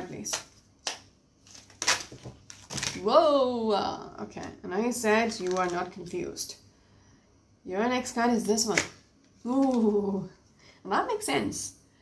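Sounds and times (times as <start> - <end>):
cards being shuffled: 0.1 - 3.0, 5.2 - 6.2.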